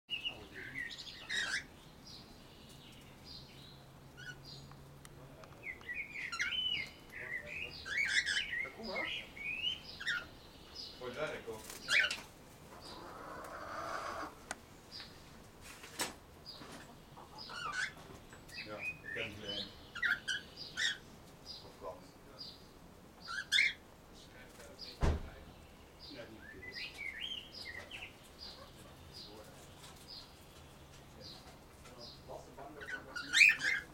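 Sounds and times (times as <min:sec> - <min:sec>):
cockatiels chirping and warbling: 0:00.3 - 0:01.7, 0:04.1 - 0:04.5, 0:05.7 - 0:10.3, 0:11.6 - 0:14.3, 0:16.6 - 0:21.0, 0:23.2 - 0:23.8, 0:26.2 - 0:33.9.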